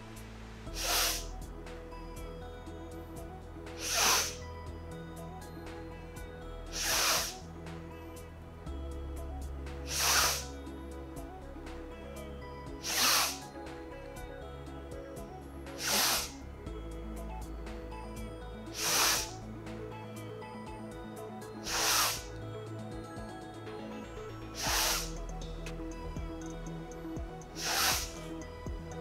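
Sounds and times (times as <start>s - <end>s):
soft background music: 0.0s - 29.0s
woman breathing forcefully: 0.7s - 1.3s, 6.8s - 7.4s, 18.8s - 19.3s.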